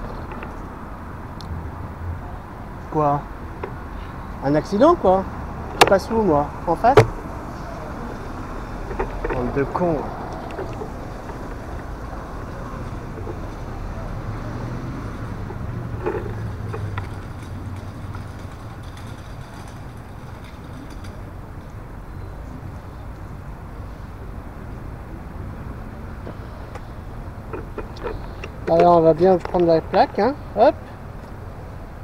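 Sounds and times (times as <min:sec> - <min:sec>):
traffic rumble: 0:00.0 - 0:32.0
van driving past: 0:05.2 - 0:18.8
short knocks: 0:06.9 - 0:07.3.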